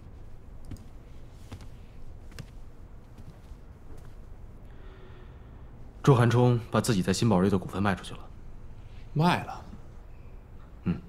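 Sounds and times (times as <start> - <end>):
computer mouse clicks: 0.6 - 0.9.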